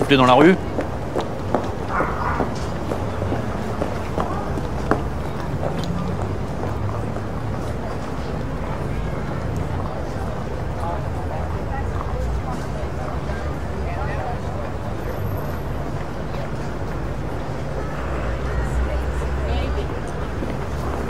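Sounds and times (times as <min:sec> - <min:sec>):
indistinct voices of passers-by: 0:00.0 - 0:21.0.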